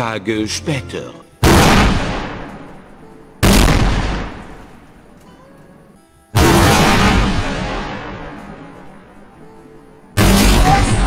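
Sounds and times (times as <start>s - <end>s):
firecracker bang: 1.4s - 2.6s, 3.4s - 4.7s, 6.4s - 8.6s.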